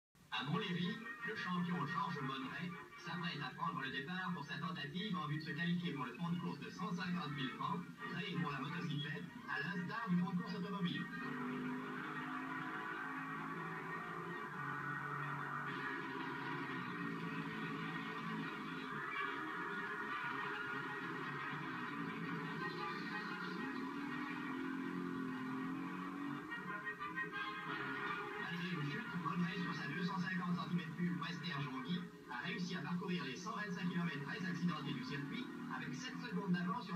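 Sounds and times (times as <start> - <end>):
newsreel music through tv speaker: 0.2 - 36.9.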